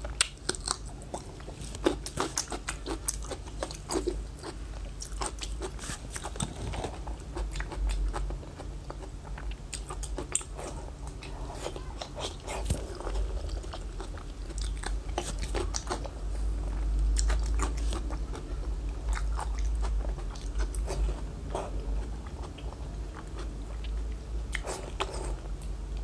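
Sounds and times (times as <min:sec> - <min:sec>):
biting and chewing: 0:00.0 - 0:25.7.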